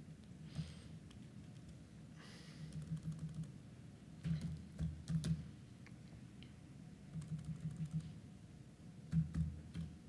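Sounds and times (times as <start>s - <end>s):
computer keyboard keystrokes: 1.4s - 1.8s, 2.7s - 3.6s, 4.2s - 5.5s, 7.1s - 8.2s, 9.1s - 10.0s.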